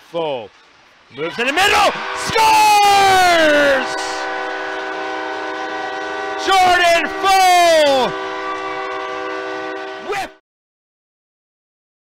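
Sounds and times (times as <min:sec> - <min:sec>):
rising and falling wail: 0:01.3 - 0:10.3
arena goal horn chord: 0:01.6 - 0:10.4.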